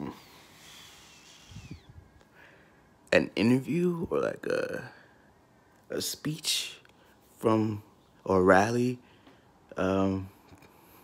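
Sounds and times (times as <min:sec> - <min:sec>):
soft exhale through the nose: 0:00.1 - 0:02.7.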